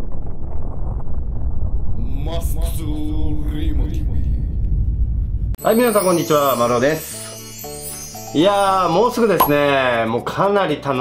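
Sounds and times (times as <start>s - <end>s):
deep steady rumbling: 0.0s - 5.6s.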